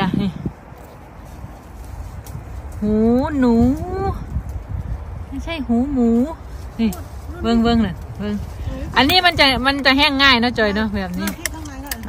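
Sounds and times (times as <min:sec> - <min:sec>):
woman speaking: 0:00.0 - 0:00.4, 0:02.8 - 0:04.2, 0:05.3 - 0:12.0
low rumble on microphone: 0:00.0 - 0:12.0.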